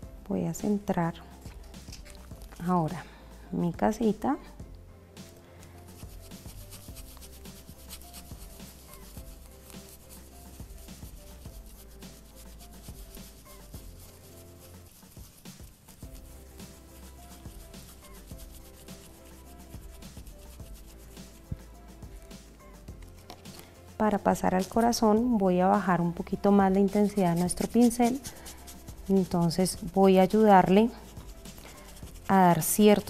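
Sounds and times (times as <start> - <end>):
stencil brush scratching on wood: 5.9 - 22.3, 24.3 - 33.0.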